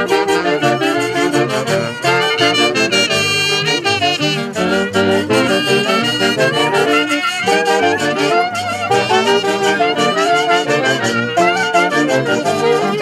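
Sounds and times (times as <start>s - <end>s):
saxophone and brass dance tune: 0.0s - 13.0s.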